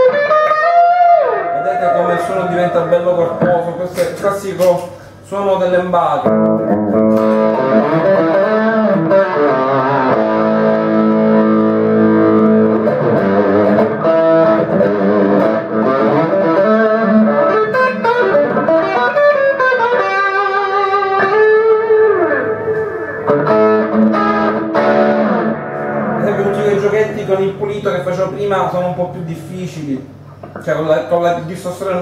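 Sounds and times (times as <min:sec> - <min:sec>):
driven electric guitar: 0:00.0 - 0:05.2, 0:06.2 - 0:27.9.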